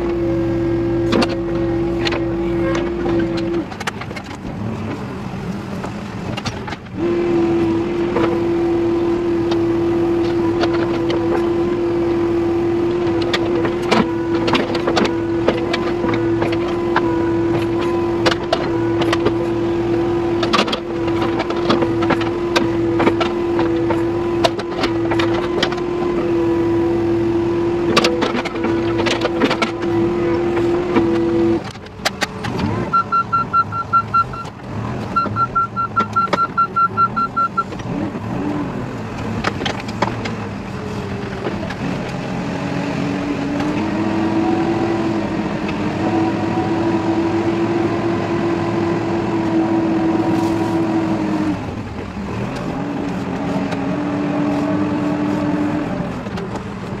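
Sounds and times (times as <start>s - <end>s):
diesel engine drone: 0.0s - 57.0s
clicks: 27.9s - 37.9s.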